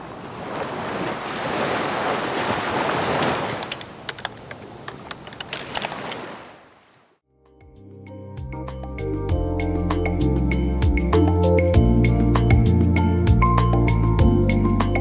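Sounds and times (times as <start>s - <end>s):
ocean surf washing: 0.0s - 7.0s
light music with pitched notes: 7.5s - 15.0s.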